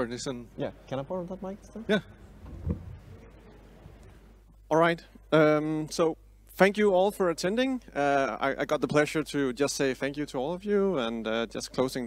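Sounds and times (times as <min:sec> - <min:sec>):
low bump on microphone: 0:02.4 - 0:03.3
microphone handling noise: 0:02.4 - 0:03.3.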